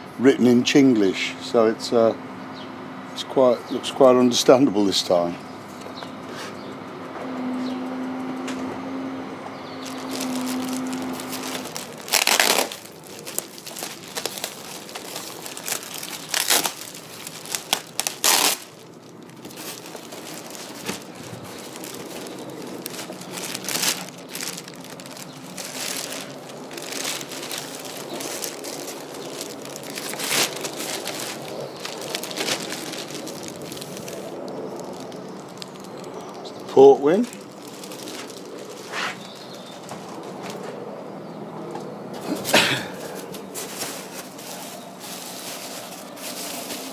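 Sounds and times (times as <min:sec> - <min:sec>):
plastic bags and foam crinkling: 0:09.7 - 0:40.9, 0:42.2 - 0:46.9
sharp crackles: 0:09.8 - 0:40.6.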